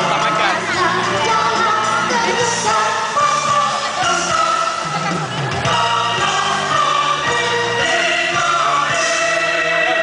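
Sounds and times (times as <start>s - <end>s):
backing music track: 0.0s - 10.0s.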